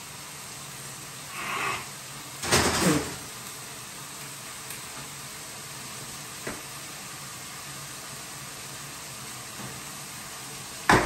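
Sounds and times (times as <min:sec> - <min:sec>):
sauce sizzling in frying pan: 0:00.0 - 0:11.0.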